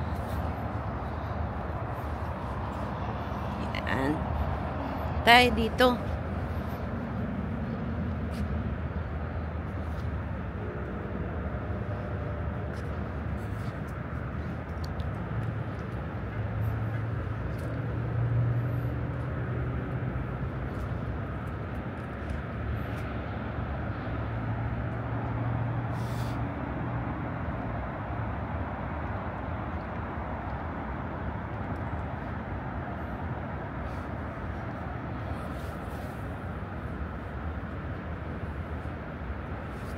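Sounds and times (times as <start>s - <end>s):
distant road traffic: 0.0s - 39.9s
low engine hum: 0.0s - 39.9s.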